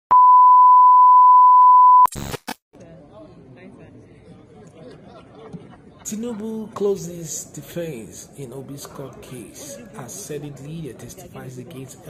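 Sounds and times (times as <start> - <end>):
steady test tone beep: 0.1 - 2.1.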